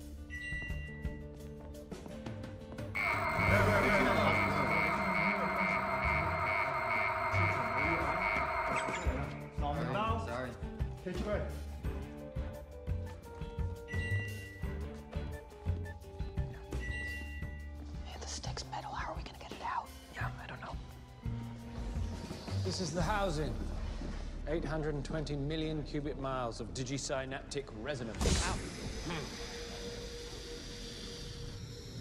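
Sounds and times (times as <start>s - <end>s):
film score music: 0.0s - 32.0s
alarm beeping fast: 3.0s - 9.6s.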